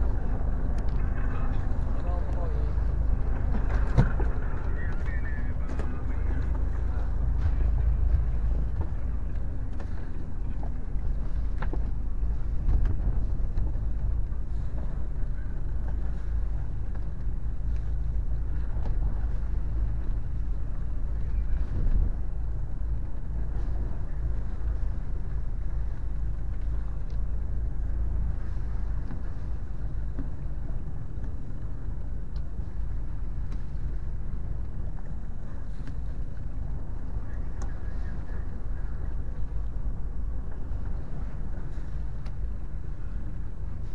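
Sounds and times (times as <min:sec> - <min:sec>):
boat engine droning: 0:00.0 - 0:43.9.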